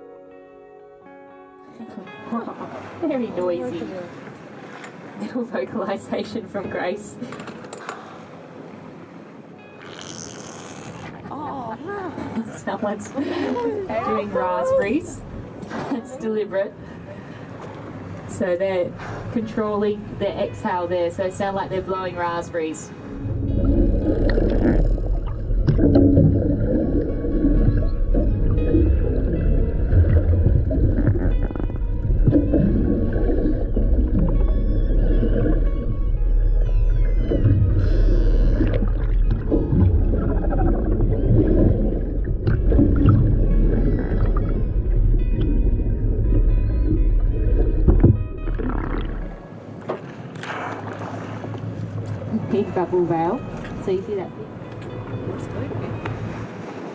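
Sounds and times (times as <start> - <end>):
killer whale buzzing calls: 9.8 - 11.3, 23.3 - 25.4, 34.3 - 39.3
underwater rumble: 23.1 - 49.8
killer whale clicks: 23.9 - 26.1.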